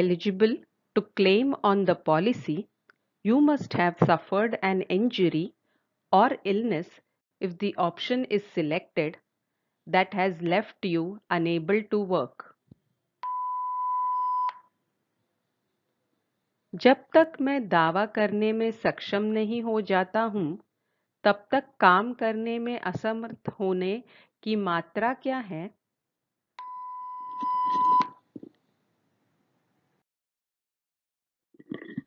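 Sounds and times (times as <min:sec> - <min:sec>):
electronic beep: 0:13.2 - 0:14.7, 0:26.6 - 0:28.1.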